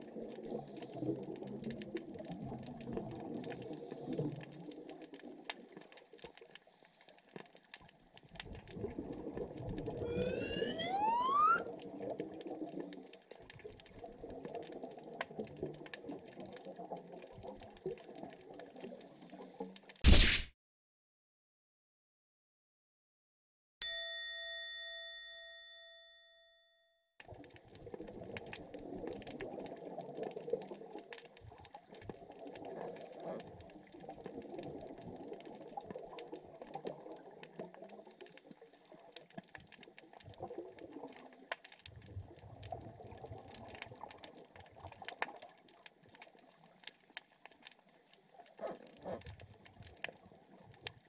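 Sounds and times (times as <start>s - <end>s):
underwater bubbling wash: 0.0s - 5.8s, 8.4s - 19.3s, 27.3s - 39.1s, 39.7s - 46.5s
bright chime: 23.8s - 27.0s
underwater clicks crackling: 43.4s - 51.0s.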